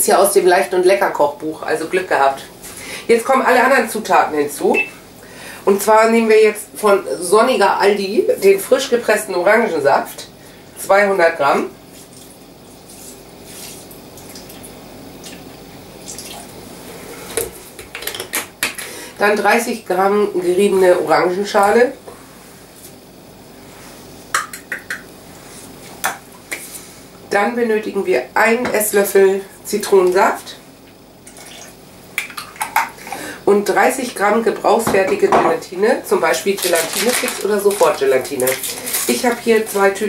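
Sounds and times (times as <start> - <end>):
lemon squeezing wet rustle: 36.3 - 40.0.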